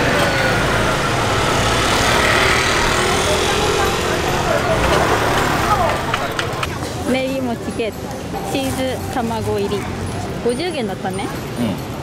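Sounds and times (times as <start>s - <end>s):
motor scooter engine passing: 0.0s - 7.7s
street traffic: 0.0s - 12.0s.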